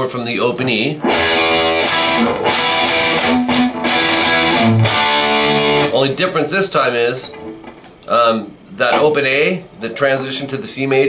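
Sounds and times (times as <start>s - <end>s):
electric guitar strumming chords: 1.0s - 8.0s, 8.8s - 9.4s.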